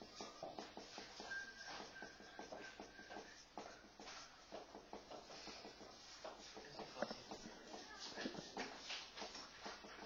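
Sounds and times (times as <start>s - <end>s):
whiteboard marker squeaking: 0.0s - 10.0s.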